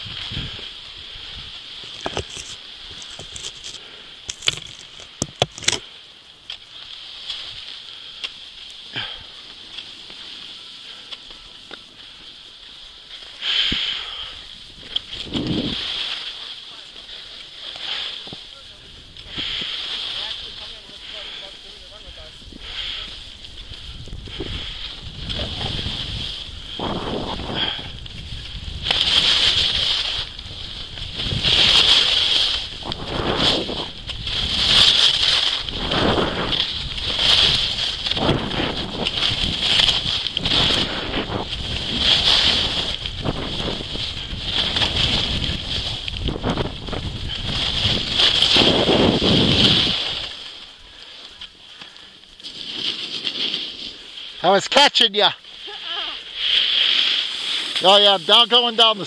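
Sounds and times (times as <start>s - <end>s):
wind rumble on microphone: 0.0s - 5.8s, 14.4s - 16.1s, 21.7s - 50.4s
skis scraping across snow: 0.0s - 59.0s.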